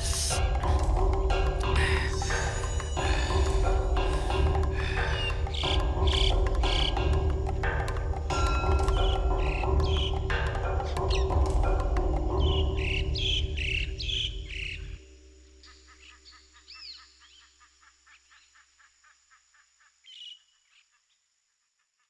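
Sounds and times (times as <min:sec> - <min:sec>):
music: 0:00.0 - 0:17.3
birds chirping: 0:00.0 - 0:21.3.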